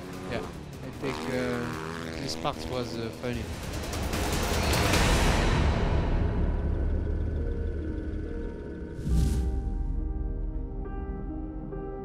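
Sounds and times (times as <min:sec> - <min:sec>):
motorcycle engine: 0:00.0 - 0:04.9
background music: 0:00.0 - 0:12.0.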